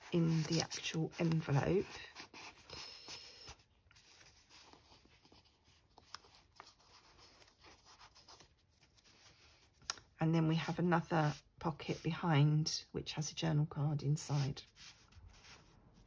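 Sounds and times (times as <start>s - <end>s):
paper rustling and scraping: 0.0s - 9.8s, 14.2s - 16.0s.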